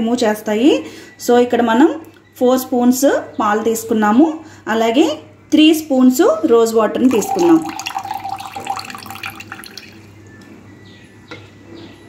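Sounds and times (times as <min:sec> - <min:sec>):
liquid pouring into a bowl: 0:07.0 - 0:10.1.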